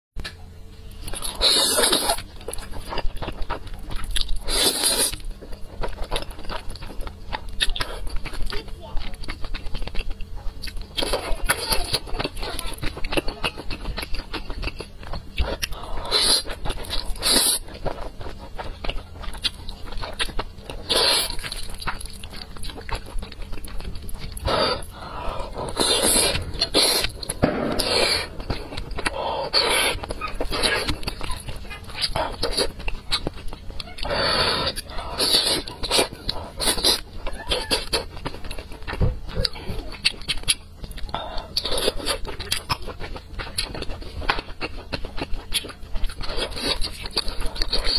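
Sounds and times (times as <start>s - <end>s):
slurping and chewing noodles: 1.1s - 47.9s.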